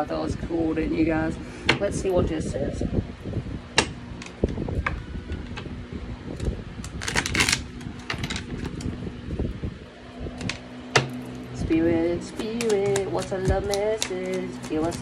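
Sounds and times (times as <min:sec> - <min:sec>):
cards shuffling: 0:06.9 - 0:08.9, 0:12.2 - 0:15.0.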